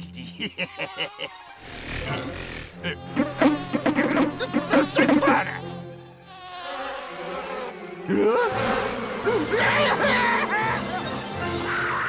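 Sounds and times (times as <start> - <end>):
cartoon mosquito buzzing: 0.5 - 10.4.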